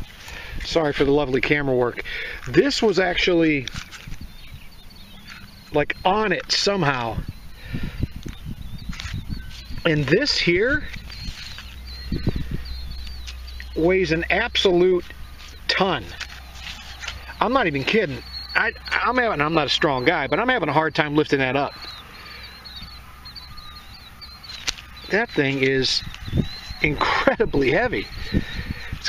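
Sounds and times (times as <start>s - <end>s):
steady low rumble: 0.0s - 29.0s
small bird chirping: 1.4s - 29.0s
knocks and rustles in dry grass: 3.6s - 4.3s, 8.2s - 9.9s, 10.8s - 12.4s, 15.1s - 17.4s, 24.5s - 26.2s.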